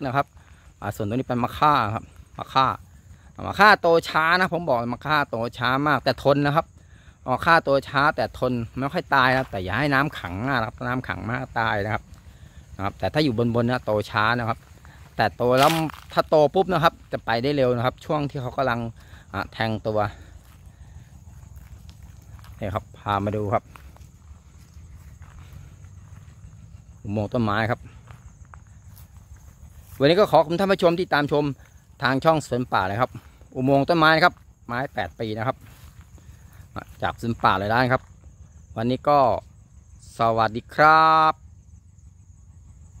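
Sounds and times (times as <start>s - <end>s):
man speaking: 0.0s - 6.7s, 7.3s - 21.2s, 22.2s - 23.8s, 27.0s - 28.0s, 29.9s - 35.7s, 36.7s - 38.0s, 38.8s - 39.4s
high insect drone: 0.0s - 43.0s
footsteps on gravel and grass: 7.8s - 38.7s.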